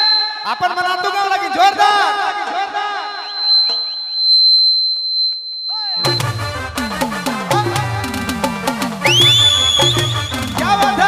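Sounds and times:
microphone feedback whistling: 0.0 - 0.6, 3.2 - 7.2, 9.0 - 11.0
drum hits: 6.0 - 11.0.

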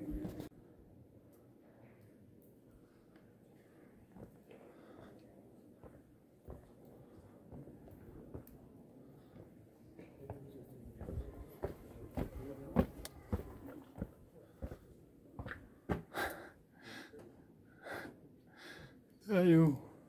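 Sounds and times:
footsteps: 0.0 - 0.5, 9.3 - 16.1
faint distant voices: 7.0 - 16.1.

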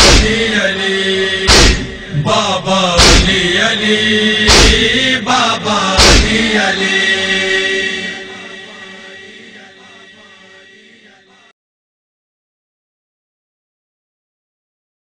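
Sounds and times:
heavy thuds keeping time: 0.0 - 0.5, 1.5 - 2.4, 3.0 - 3.6, 4.4 - 5.0, 6.0 - 6.6
lament being chanted: 0.0 - 11.5.

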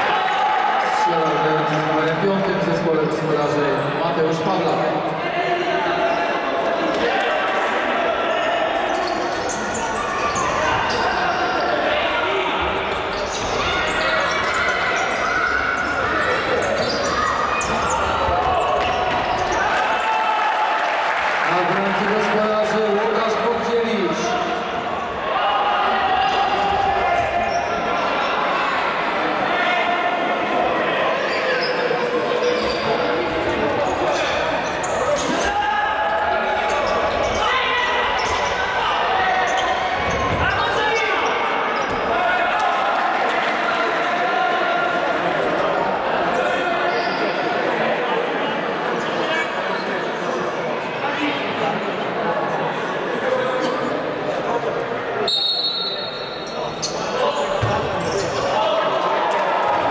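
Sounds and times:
overlapping voices in hall: 17.7 - 32.4, 37.8 - 46.8, 58.4 - 59.9.

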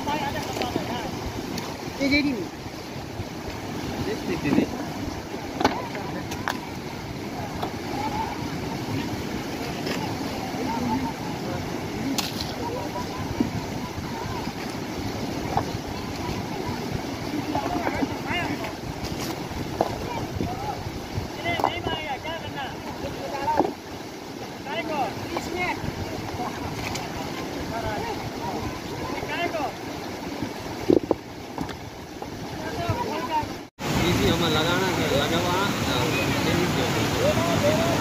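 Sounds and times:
rushing mountain river: 0.0 - 38.0.

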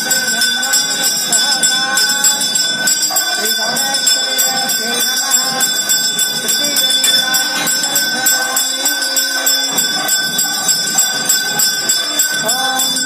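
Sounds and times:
temple bells ringing: 0.0 - 13.0
voices: 0.0 - 13.0.

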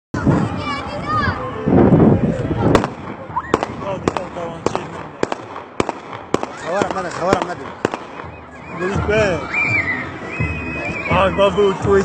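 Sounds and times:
sharp bangs: 2.7 - 9.2
voices shouting: 6.3 - 12.0.

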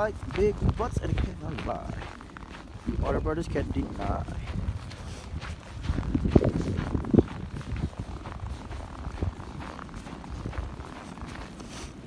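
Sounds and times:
low rumbling noise: 0.0 - 11.4
footsteps crunching on snow: 0.0 - 12.0.

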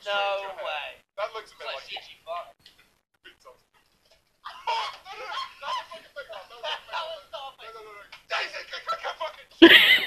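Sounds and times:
men laughing hard: 4.5 - 7.3, 9.6 - 10.0.

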